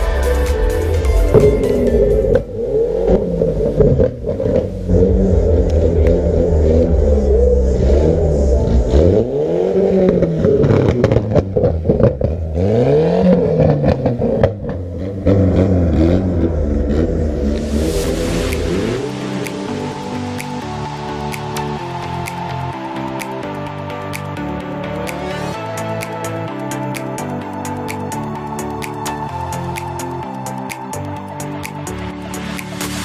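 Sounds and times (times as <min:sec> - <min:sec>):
car engine revving: 0:01.3 - 0:33.0.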